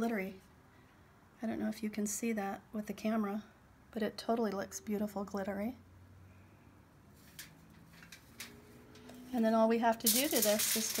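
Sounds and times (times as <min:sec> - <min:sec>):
faint clicks of small objects: 0:10.0 - 0:11.0.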